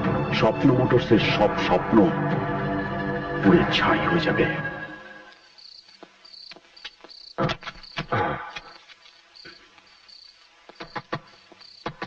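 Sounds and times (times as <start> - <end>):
crickets chirping: 4.3 - 12.0.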